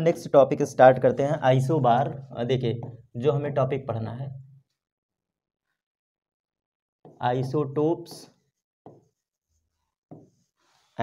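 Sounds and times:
person speaking: 0.0s - 4.4s, 7.1s - 8.3s
pen writing on glass screen: 7.1s - 10.9s.

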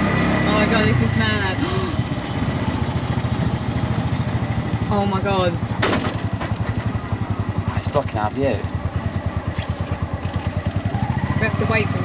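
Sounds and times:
small engine pulsing: 0.0s - 12.0s.

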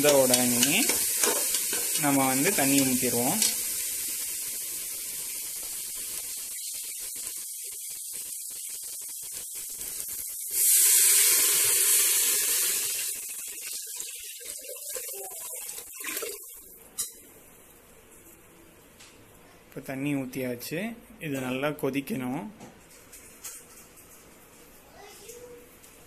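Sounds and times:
water pouring into pot: 0.0s - 16.7s
food sizzling in a pot: 0.0s - 18.4s.

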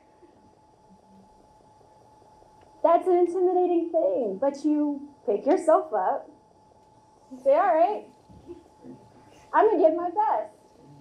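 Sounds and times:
faint steady hum: 0.0s - 11.0s
woman speaking: 2.8s - 6.4s, 7.3s - 8.1s, 9.5s - 10.6s.

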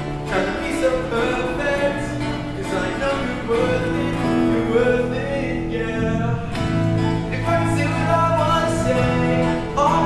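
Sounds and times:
instrumental accompaniment: 0.0s - 10.0s
young man singing: 0.0s - 10.0s.

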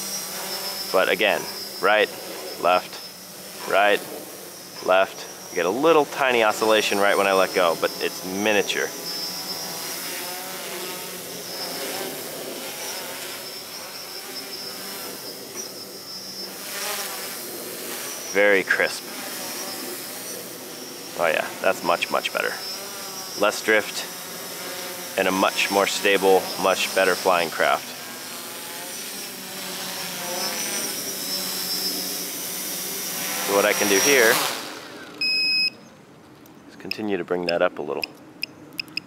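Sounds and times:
faint high whine: 0.0s - 28.0s, 30.0s - 36.0s
drone motors whirring: 0.0s - 35.7s
high-pitched electronic beep: 35.2s - 35.8s.

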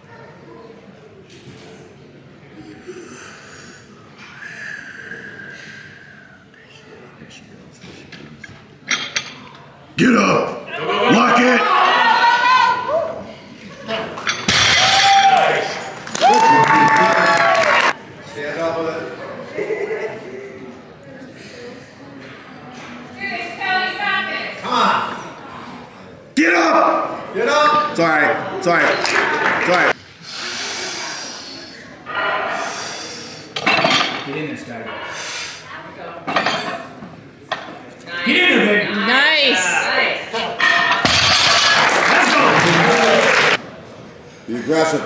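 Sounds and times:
spectators cheering and clapping: 14.5s - 18.0s, 28.8s - 30.0s, 41.6s - 43.6s.

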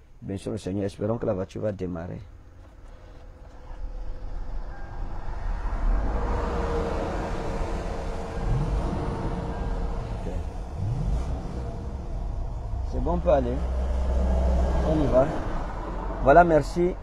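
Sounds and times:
car engine running: 2.5s - 17.0s.

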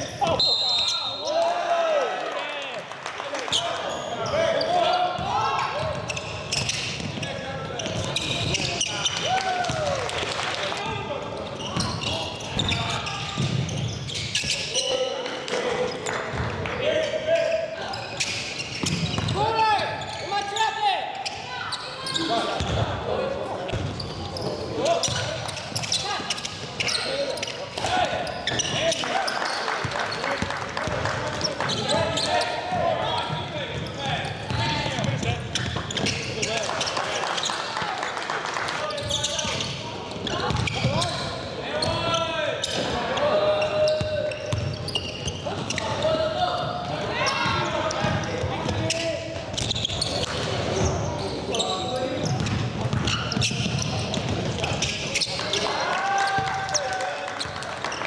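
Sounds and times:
shouts and chatter in gym: 0.0s - 58.0s.

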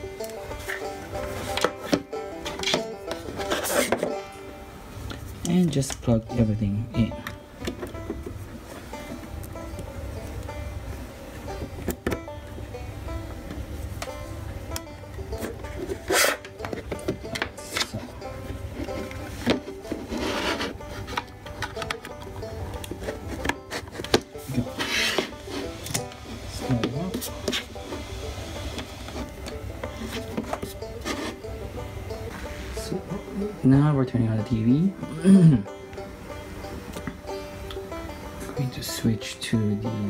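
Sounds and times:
background music with plucked strings: 0.0s - 40.0s.

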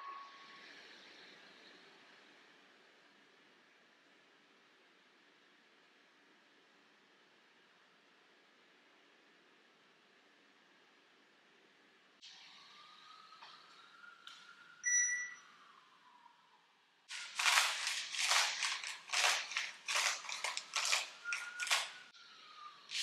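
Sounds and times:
short electronic beep: 14.8s - 15.5s.

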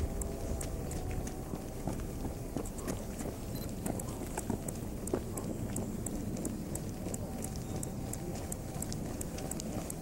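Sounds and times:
low outdoor rumble: 0.0s - 10.0s
running footsteps on pavement: 0.0s - 10.0s.

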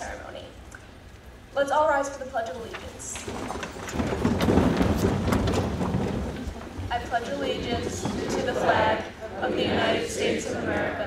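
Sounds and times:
audience shuffling and rustling: 0.0s - 11.0s.

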